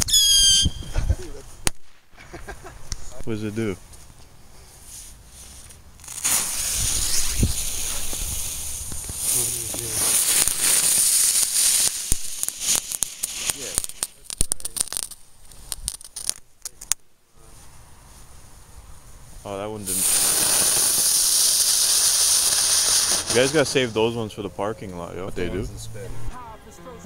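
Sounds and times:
firework hissing and crackling: 4.4 - 24.4.

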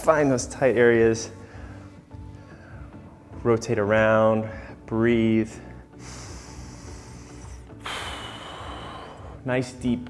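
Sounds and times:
faint background music: 0.0 - 10.0
deep breaths close to microphone: 1.3 - 3.3, 4.4 - 4.9, 5.5 - 9.5.

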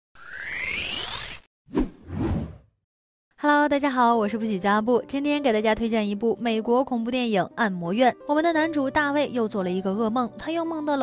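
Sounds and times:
rising sweep effect: 0.2 - 1.5
short whooshes: 1.7 - 2.7.

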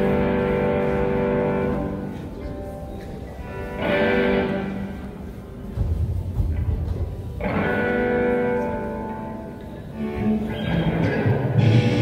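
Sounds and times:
electric guitar chords ringing: 0.0 - 5.2, 7.4 - 12.0.

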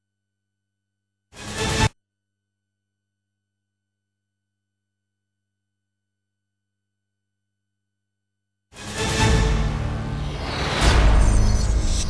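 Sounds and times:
dramatic intro theme music: 8.8 - 12.0.

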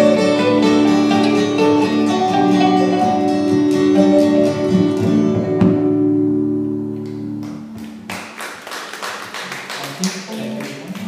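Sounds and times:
stray plucked notes: 0.0 - 8.4.

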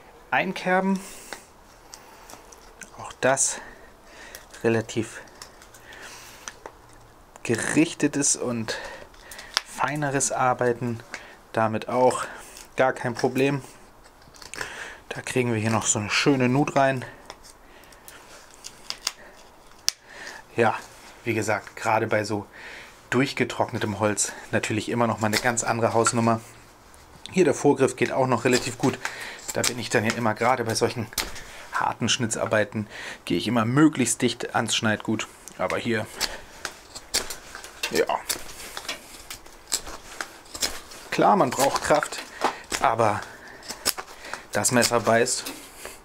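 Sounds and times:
knife carving wood: 8.9 - 9.9, 16.7 - 20.0, 25.0 - 26.4, 27.9 - 31.7, 35.4 - 46.0.

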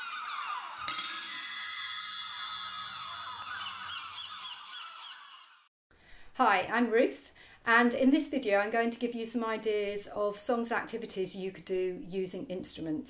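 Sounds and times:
bright ringing chime: 0.8 - 4.7.

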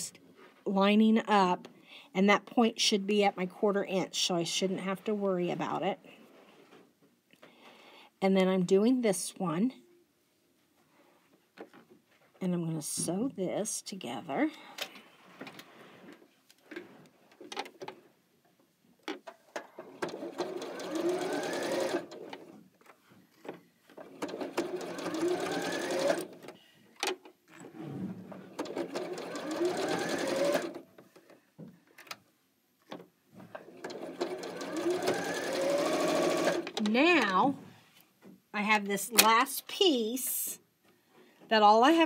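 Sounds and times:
sewing machine stitching: 19.6 - 22.6, 24.0 - 26.6, 27.6 - 30.9, 33.5 - 36.9.

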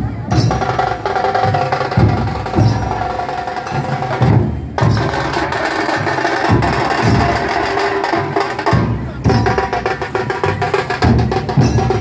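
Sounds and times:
deep drum strokes: 0.0 - 12.0.

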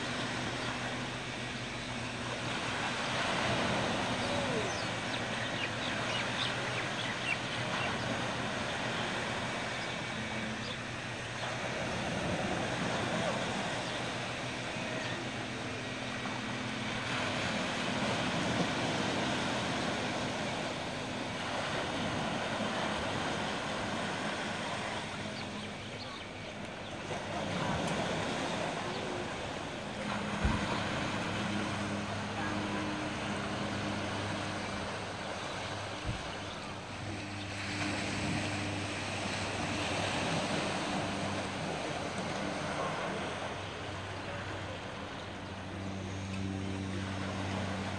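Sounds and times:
boat engine low hum: 0.0 - 47.9
small waves washing onto beach: 0.0 - 47.9.

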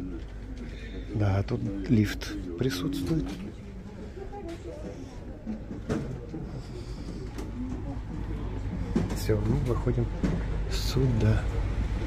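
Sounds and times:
passengers talking: 0.0 - 12.0.

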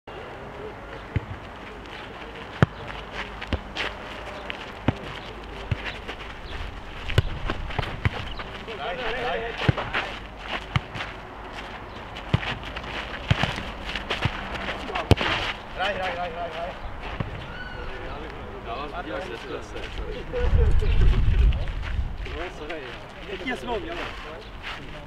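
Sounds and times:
ball kicked and bouncing on asphalt: 1.0 - 17.6
footsteps scuffing on asphalt: 1.4 - 17.8
players calling out: 12.0 - 20.4.

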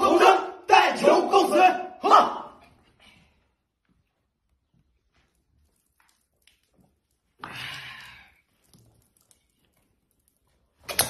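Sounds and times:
man shouting: 0.0 - 2.6.

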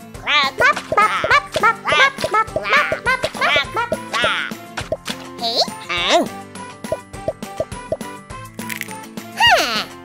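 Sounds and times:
cartoon music: 0.2 - 5.1
squeaky character vocalizations: 0.4 - 4.5.

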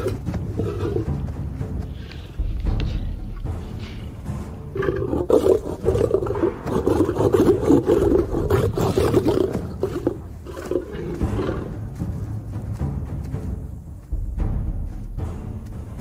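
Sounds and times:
lions growling: 0.0 - 1.3, 2.8 - 11.9
orchestral music: 0.0 - 16.0.

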